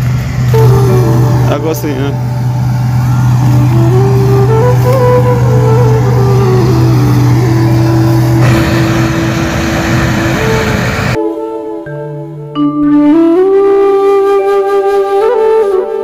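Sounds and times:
combine harvester engine drone: 0:00.0 - 0:11.2
machine rushing noise: 0:00.0 - 0:11.2.

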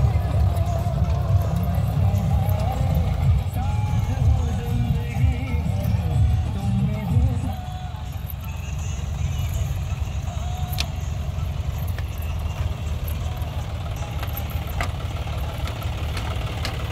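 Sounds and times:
tractor diesel engine running: 0:00.0 - 0:16.9.

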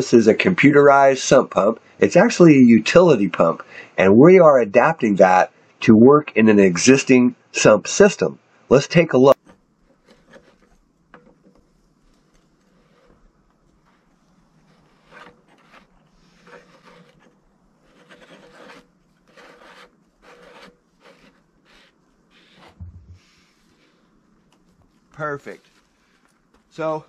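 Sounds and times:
hose and fittings rubbing: 0:09.4 - 0:26.4
soft low thump: 0:22.8 - 0:23.3.

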